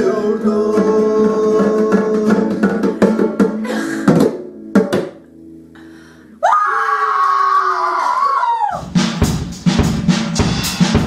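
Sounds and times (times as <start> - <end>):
person screaming: 6.4 - 8.8.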